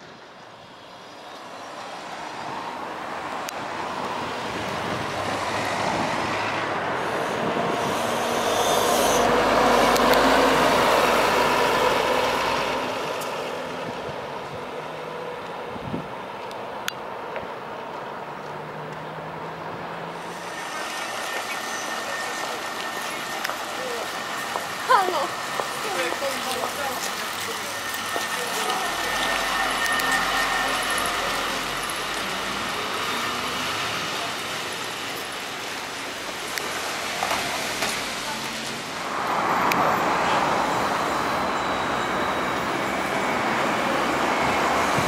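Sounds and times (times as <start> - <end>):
background traffic: 0.0 - 45.0
bus driving past: 0.0 - 45.0.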